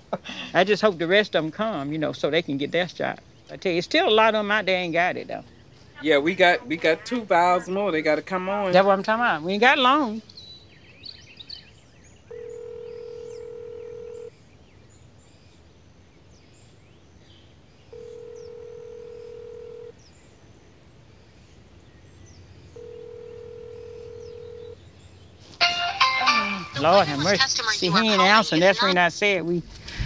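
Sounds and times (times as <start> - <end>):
person speaking: 0.0 - 5.4, 6.0 - 10.3, 26.0 - 29.7
telephone ringback tone: 12.3 - 14.3, 17.9 - 19.9, 22.8 - 24.8.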